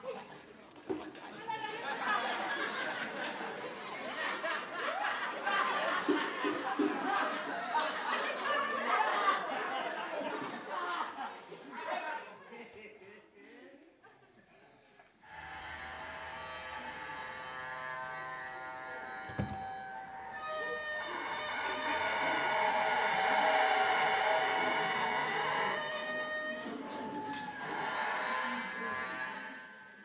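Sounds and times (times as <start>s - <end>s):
one-string bowed fiddle: 15.3s - 30.0s
knock: 19.3s - 19.7s.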